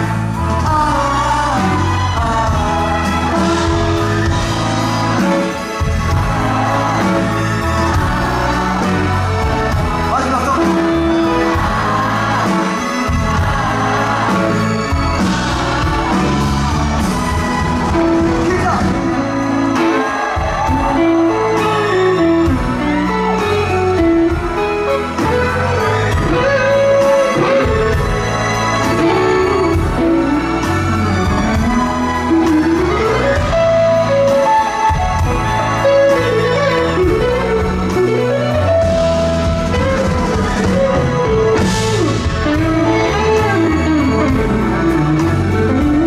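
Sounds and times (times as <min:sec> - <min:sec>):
band playing low accompaniment: 0:00.0 - 0:46.0
bass guitar: 0:00.0 - 0:46.0
drums: 0:00.0 - 0:46.0
electric guitar melody: 0:00.0 - 0:46.0.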